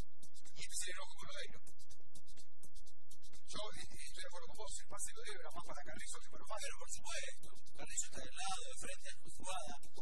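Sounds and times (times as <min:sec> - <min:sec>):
person talking: 0:00.6 - 0:01.6, 0:03.5 - 0:10.0.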